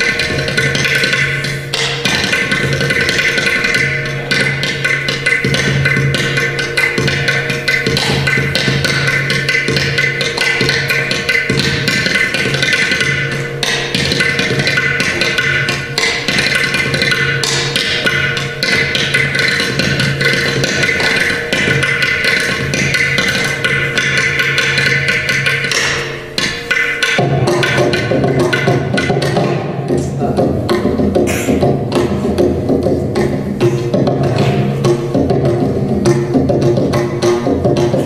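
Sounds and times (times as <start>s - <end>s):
hand drum strokes: 0.0s - 38.0s.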